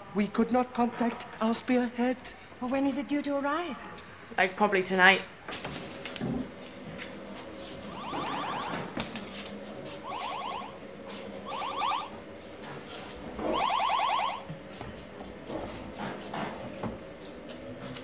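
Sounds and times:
electronic chittering: 8.0s - 8.8s, 10.0s - 10.7s, 11.5s - 12.1s.

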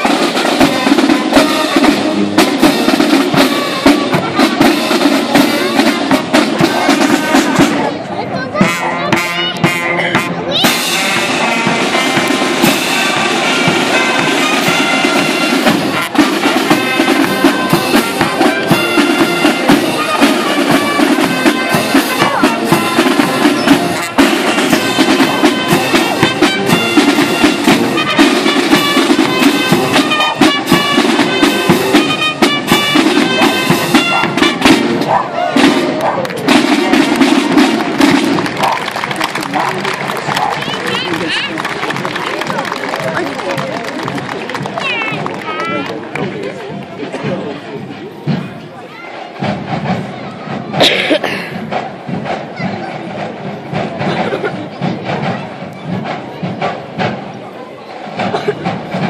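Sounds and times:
rapid side drum beats: 0.0s - 8.0s, 8.6s - 59.0s
brass instruments playing march: 0.0s - 59.0s.

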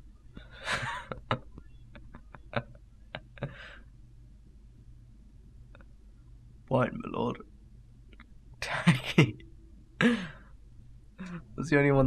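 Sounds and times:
person sighing: 0.4s - 1.1s, 3.4s - 3.8s, 10.0s - 10.4s
man speaking: 0.6s - 1.4s, 6.7s - 7.4s, 8.6s - 9.4s, 10.0s - 10.3s, 11.2s - 12.0s.

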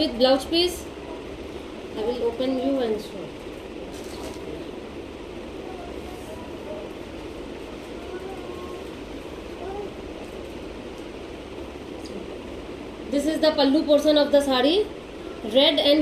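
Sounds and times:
background hiss: 0.0s - 16.0s
faint distant voices: 0.8s - 10.8s.

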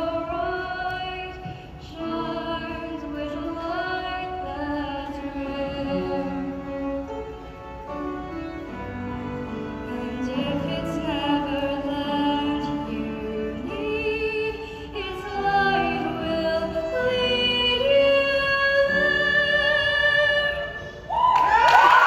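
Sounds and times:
violin: 0.0s - 21.3s.

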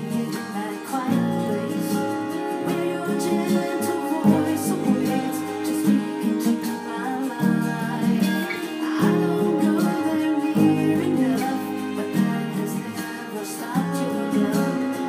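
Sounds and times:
acoustic guitar strumming chords: 0.0s - 15.0s.

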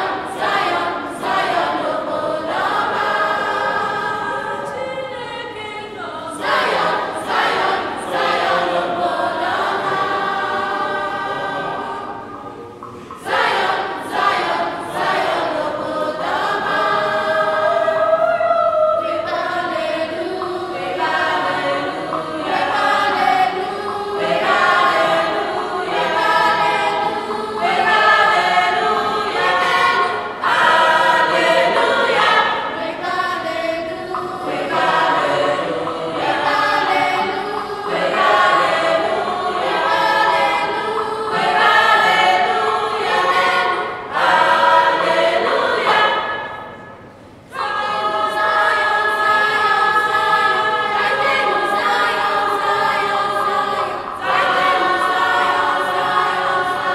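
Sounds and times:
children's choir singing unaccompanied: 0.0s - 56.9s.

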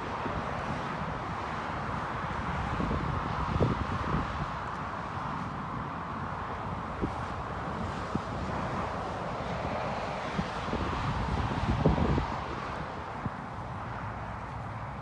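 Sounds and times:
distant road traffic hum: 0.0s - 15.0s
wind rumbling on microphone: 0.0s - 15.0s.

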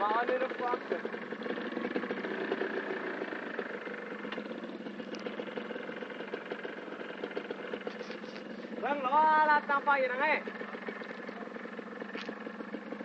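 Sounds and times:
small motorcycle engine idling: 0.0s - 13.0s.

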